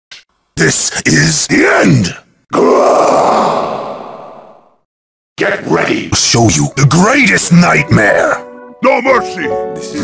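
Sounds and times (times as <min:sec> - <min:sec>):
growling roar: 0:02.6 - 0:04.5.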